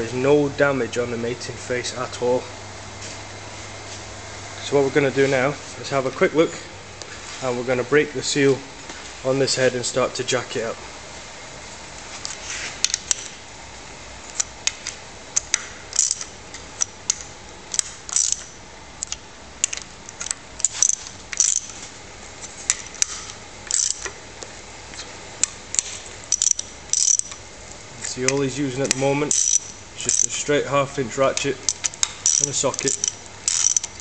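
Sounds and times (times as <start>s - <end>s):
hand ratchet clicking: 15.4s - 21.8s, 23.0s - 24.1s, 25.7s - 27.4s, 28.2s - 30.4s, 31.3s - 34.0s
sharp metallic clinks: 26.3s - 27.4s, 28.9s - 30.4s, 31.7s - 34.0s.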